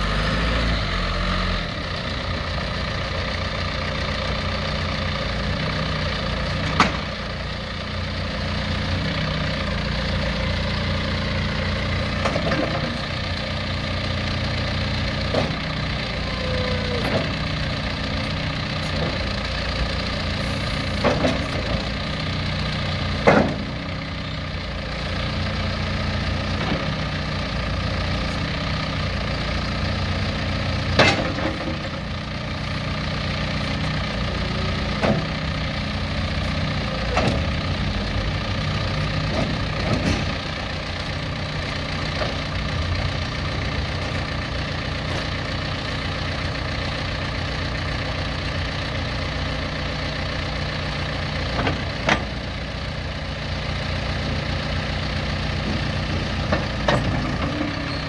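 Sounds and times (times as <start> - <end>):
diesel engine running: 0.0 - 58.0
loader bucket clunking: 5.8 - 46.6, 47.2 - 58.0.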